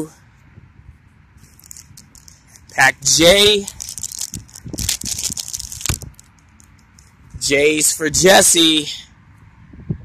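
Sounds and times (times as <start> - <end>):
plastic foil bag crinkling and tearing: 1.5 - 6.3.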